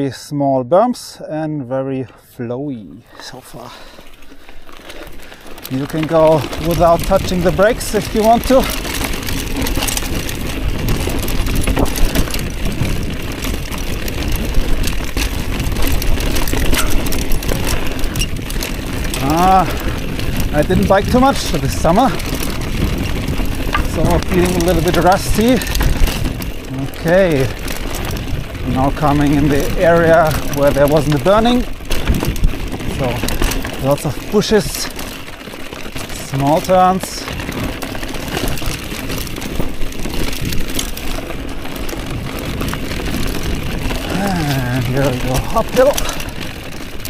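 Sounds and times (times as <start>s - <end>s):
tyres crunching on loose stones: 2.0s - 47.0s
bike rattling and clicking: 3.1s - 47.0s.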